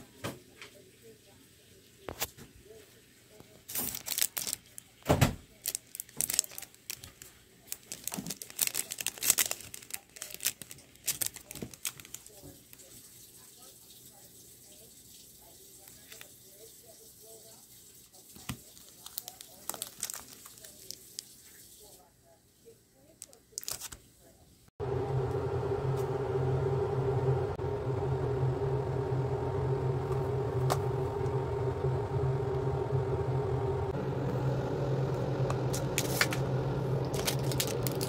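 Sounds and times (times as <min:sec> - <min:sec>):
plastic packaging crinkling: 0:03.7 - 0:12.8, 0:18.3 - 0:21.6, 0:23.2 - 0:24.0, 0:37.0 - 0:38.0
machine hum: 0:24.8 - 0:38.0.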